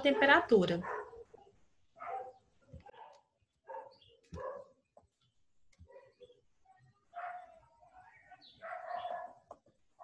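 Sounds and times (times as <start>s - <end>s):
distant dog barking: 0.0s - 4.8s, 5.8s - 6.4s, 7.0s - 7.7s, 8.5s - 9.5s.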